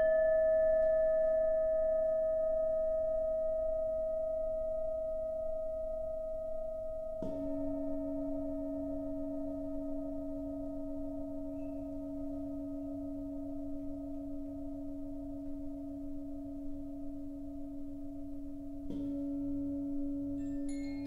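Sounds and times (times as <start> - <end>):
low floor bowl struck: 0.0 - 21.0
singing bowl ringing: 0.0 - 21.0.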